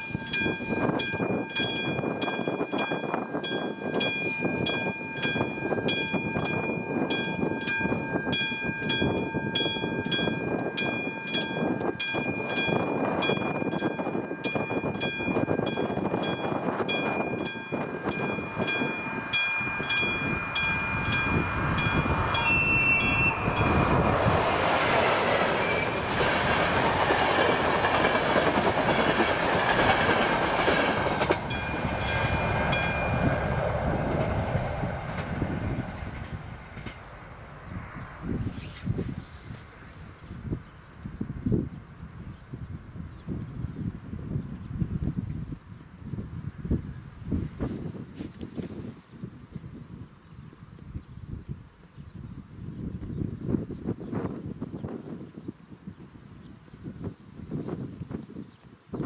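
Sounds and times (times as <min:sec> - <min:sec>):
level crossing bell ringing: 0:00.0 - 0:24.1
train wheel and rail noise: 0:00.0 - 0:41.8
train horn blast: 0:18.6 - 0:24.3.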